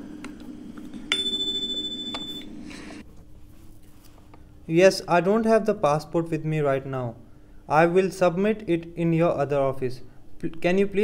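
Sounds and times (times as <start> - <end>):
faint steady hum: 0.0 - 11.0
electronic chime tone: 1.1 - 2.5.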